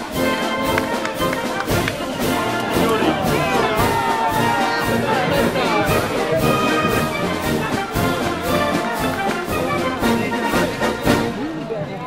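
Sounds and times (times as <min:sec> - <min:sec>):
brass band playing: 0:00.0 - 0:11.7.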